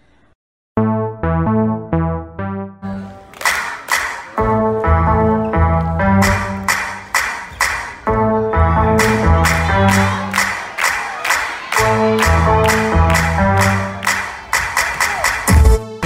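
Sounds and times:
loud dance music with deep bass: 0:04.0 - 0:16.0.

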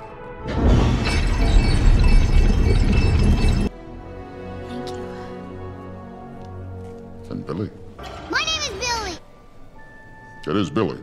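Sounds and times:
loud shattering crash: 0:00.5 - 0:03.7
soft background music: 0:03.7 - 0:11.0.

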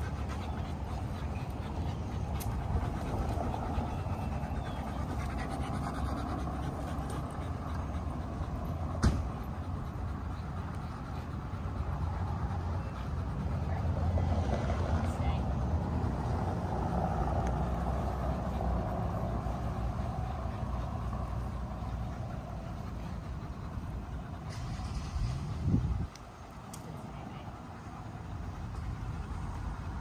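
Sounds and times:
low traffic rumble: 0:00.0 - 0:30.0
vehicle passing: 0:00.0 - 0:30.0.

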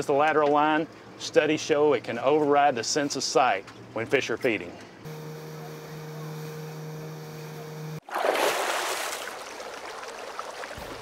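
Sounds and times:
outboard motors running: 0:03.6 - 0:08.0
rush of water-like noise: 0:08.0 - 0:11.0.

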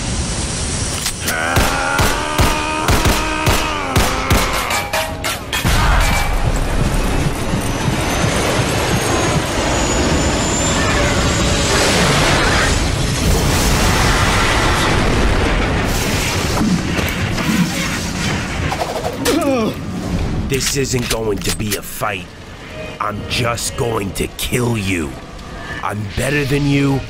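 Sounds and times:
rumble of fire: 0:05.6 - 0:23.1
explosion blast: 0:11.8 - 0:17.4.

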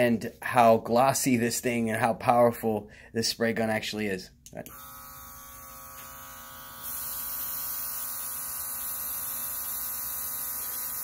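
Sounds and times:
spray gun motor buzzing: 0:04.7 - 0:11.0.

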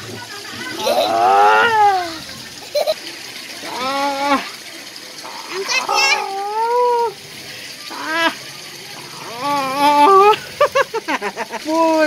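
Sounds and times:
person's long drawn-out cry: 0:00.8 - 0:02.2, 0:06.0 - 0:07.2, 0:07.9 - 0:08.4, 0:09.2 - 0:10.4.

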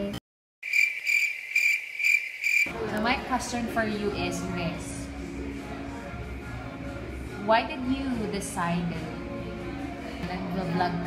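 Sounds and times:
cricket chirping: 0:00.6 - 0:02.7.

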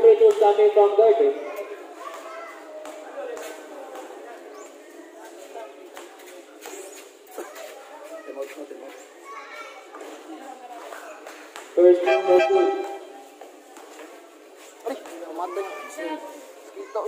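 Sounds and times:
people talking and calling out: 0:00.0 - 0:17.0.

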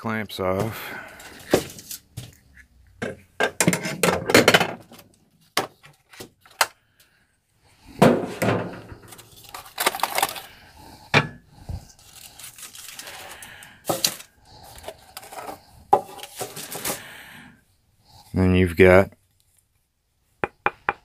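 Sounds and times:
foil crinkling: 0:09.0 - 0:10.6, 0:11.8 - 0:15.6, 0:16.2 - 0:17.1.

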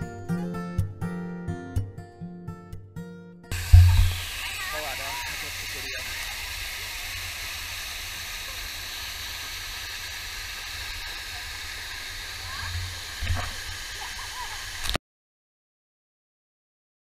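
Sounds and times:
waterfall rushing into pool: 0:03.5 - 0:15.0
thump: 0:03.6 - 0:04.2.

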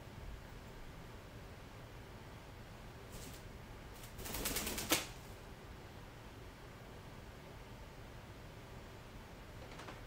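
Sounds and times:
bird wings flapping: 0:04.0 - 0:05.2.

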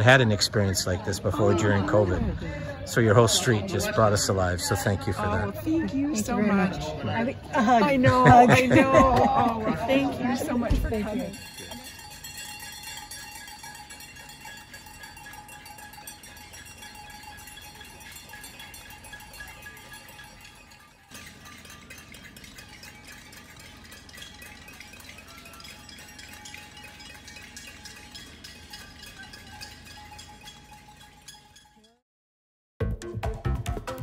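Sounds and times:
cowbells clanking: 0:00.0 - 0:32.0.

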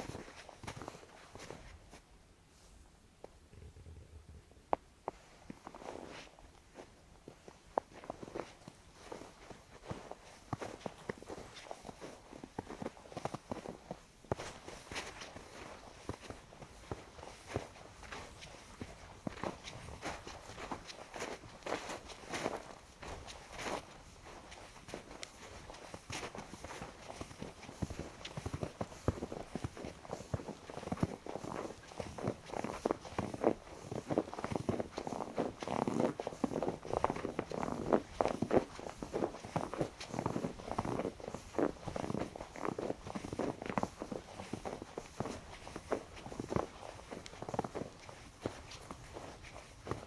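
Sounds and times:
footsteps crunching through snow: 0:00.0 - 0:02.1, 0:05.1 - 0:50.0.

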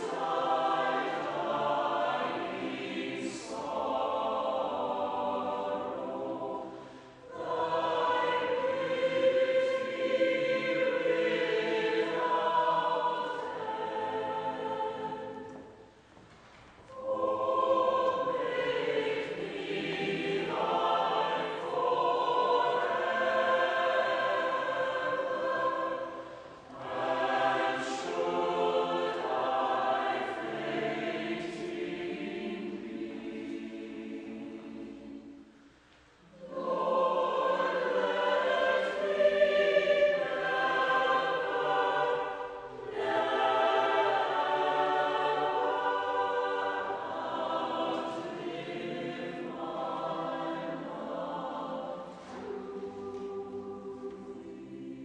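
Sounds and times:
choir singing: 0:00.0 - 0:16.0, 0:16.9 - 0:55.0.

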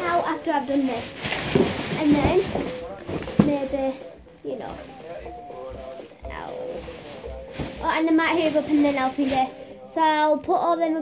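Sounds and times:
close speech: 0:00.0 - 0:01.2, 0:01.9 - 0:11.0
faint background voices: 0:00.0 - 0:11.0.

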